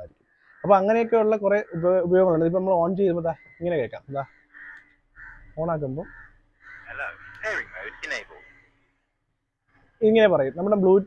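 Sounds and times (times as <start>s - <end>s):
crows cawing: 0.0s - 2.5s, 3.2s - 10.3s.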